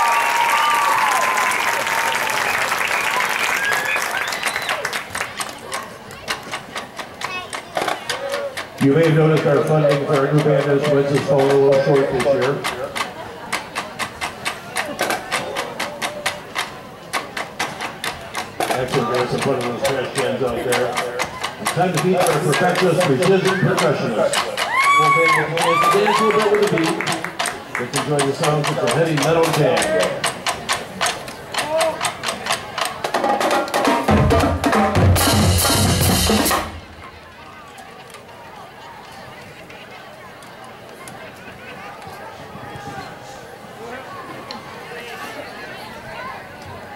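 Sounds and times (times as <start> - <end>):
drumline playing: 2.7 - 37.5
sharp clicking percussion strikes: 5.3 - 37.1
bass drums: 34.1 - 37.0.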